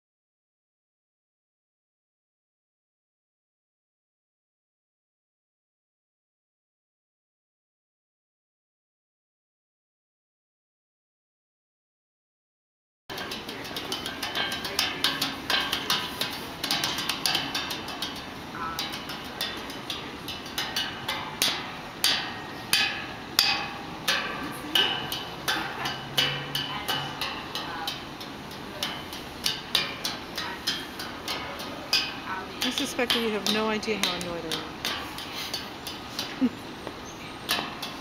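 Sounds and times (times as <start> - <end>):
percussion knocks and clacks: 13.1 - 38.0.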